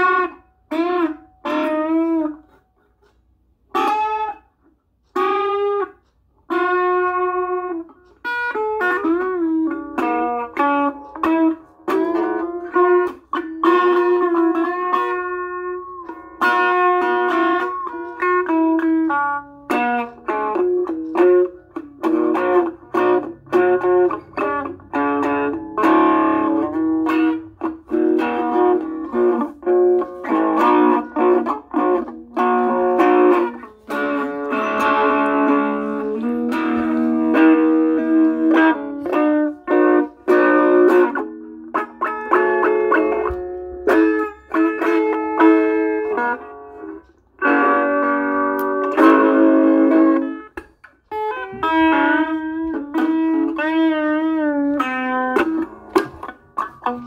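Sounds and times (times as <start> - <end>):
electric guitar playing notes and chords: 0.0 - 2.6, 3.4 - 57.0.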